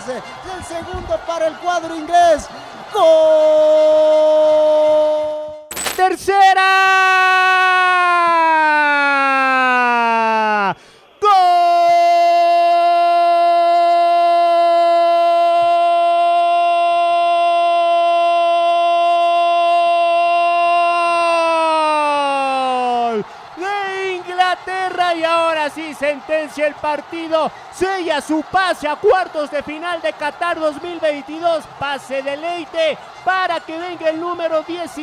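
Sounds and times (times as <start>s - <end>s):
commentator shouting goal: 0.0s - 35.0s.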